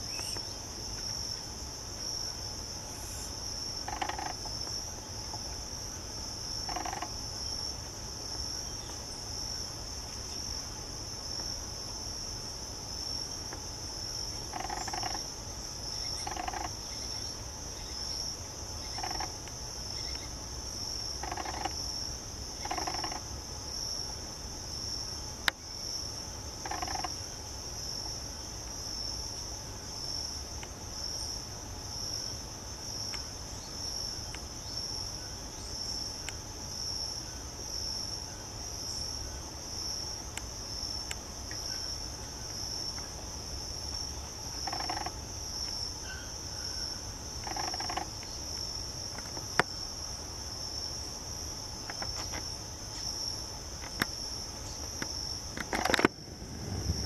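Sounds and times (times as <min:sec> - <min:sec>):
insects chirring: 0:00.0 - 0:57.0
low background rumble: 0:56.1 - 0:57.0.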